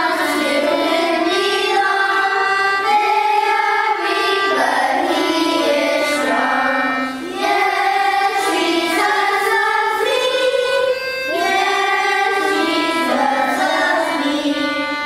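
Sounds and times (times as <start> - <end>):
choir singing: 0.0 - 15.0.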